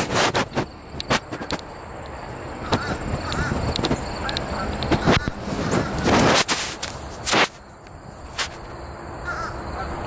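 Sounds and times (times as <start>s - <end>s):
distant crows cawing: 1.1s - 6.4s, 9.2s - 10.0s.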